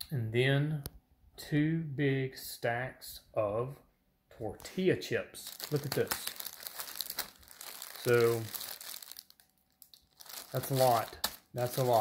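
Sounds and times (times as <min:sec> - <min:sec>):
plastic bag crinkling: 0:05.4 - 0:12.0.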